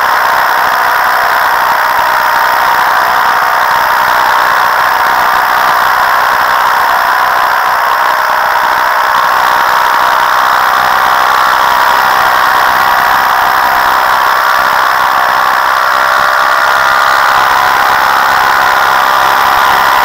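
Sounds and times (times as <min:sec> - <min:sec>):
paramotor engine drone: 0:00.0 - 0:20.0.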